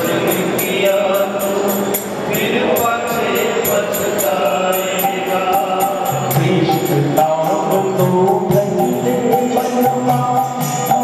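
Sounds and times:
man singing chant-like melody: 0:00.0 - 0:11.0
hand drum: 0:04.8 - 0:11.0.

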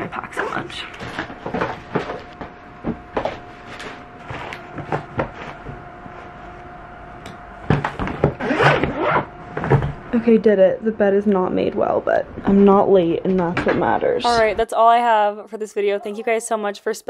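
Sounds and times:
suitcase zipping: 0:08.3 - 0:09.3.

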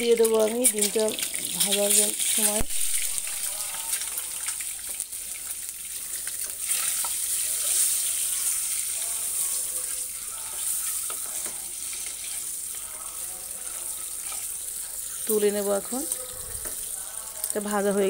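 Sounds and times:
eggs sizzling in oil: 0:00.0 - 0:18.0.

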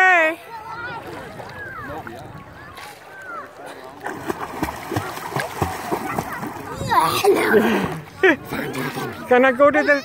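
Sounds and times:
water splashing: 0:00.0 - 0:09.6
faint voices: 0:00.0 - 0:10.0.

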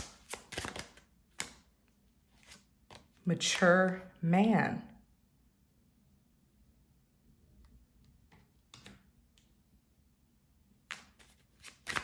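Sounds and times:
sharp card clicks: 0:00.0 - 0:01.6.

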